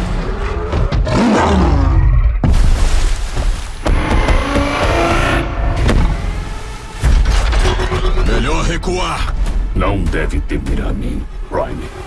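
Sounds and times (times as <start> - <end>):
heavy hits: 3.8 - 10.8.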